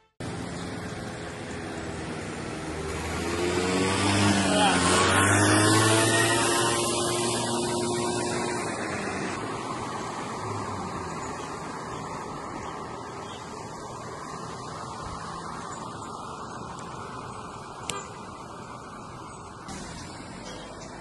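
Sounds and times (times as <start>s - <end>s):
outdoor background noise: 0.0s - 21.0s
vehicle passing by: 0.2s - 21.0s.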